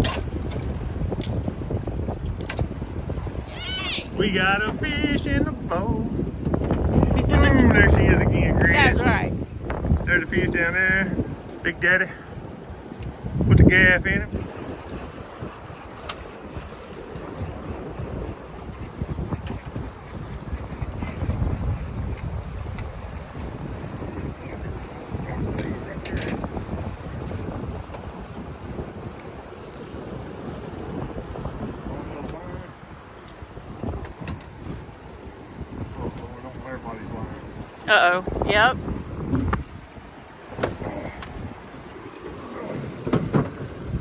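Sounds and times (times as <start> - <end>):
wind buffeting microphone: 0.0 - 44.0
river water flowing: 3.3 - 4.6, 14.3 - 24.8, 36.4 - 44.0.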